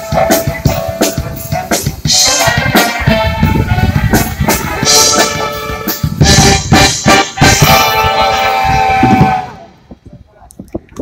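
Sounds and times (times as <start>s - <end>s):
brass band final chord: 2.1s - 9.8s.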